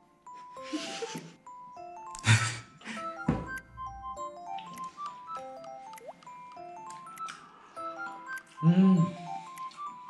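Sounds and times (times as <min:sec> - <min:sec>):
light chiming melody: 0:00.0 - 0:10.0.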